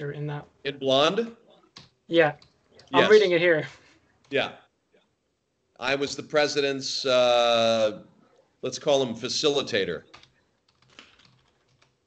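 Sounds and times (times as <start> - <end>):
soft keyboard keystrokes: 10.1 - 12.0.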